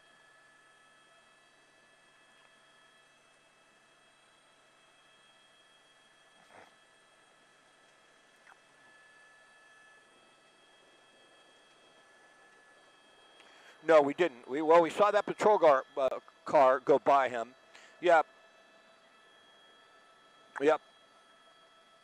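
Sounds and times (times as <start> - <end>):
faint electronic hum: 0.0 - 22.0.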